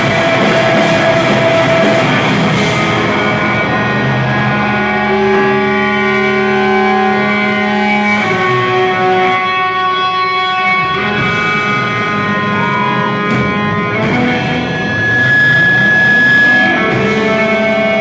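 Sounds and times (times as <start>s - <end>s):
live rock band music: 0.0s - 18.0s
sustained electric guitar chords: 0.0s - 18.0s.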